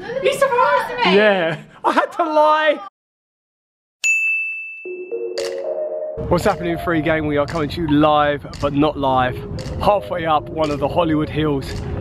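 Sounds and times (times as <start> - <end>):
bright ding: 4.0 - 5.8
held music notes: 5.1 - 11.8.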